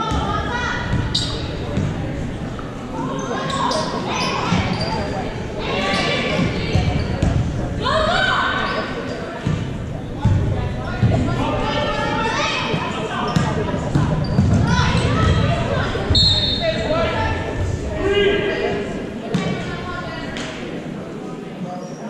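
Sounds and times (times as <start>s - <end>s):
indistinct voices: 0.0s - 21.8s.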